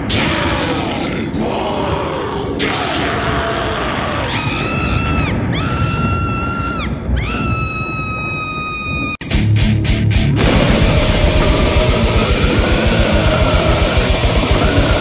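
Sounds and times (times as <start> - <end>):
dense low roar: 0.0 - 5.5, 9.4 - 15.0
long high screams: 0.0 - 9.3.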